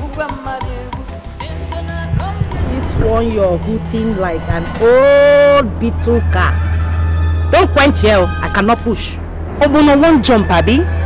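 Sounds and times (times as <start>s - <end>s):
steady low hum: 1.4s - 11.0s.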